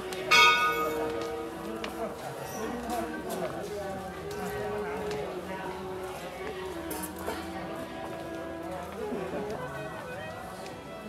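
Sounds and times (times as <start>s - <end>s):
metal temple bell ringing: 0.3s - 1.4s.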